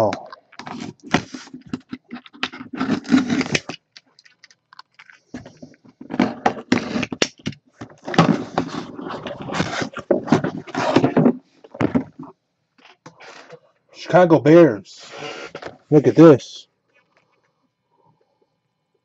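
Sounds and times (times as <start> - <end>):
cardboard box being opened: 0.6 - 3.8, 7.9 - 12.2.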